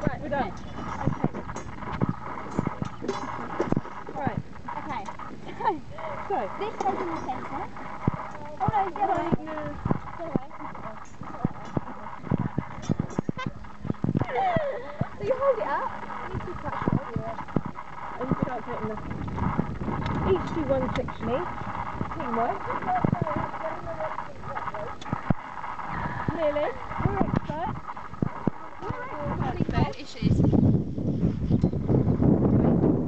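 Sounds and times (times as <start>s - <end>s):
quiet talking: 0.0s - 30.5s
wind rumbling on microphone: 0.0s - 33.0s
sharp clicks: 6.0s - 30.0s.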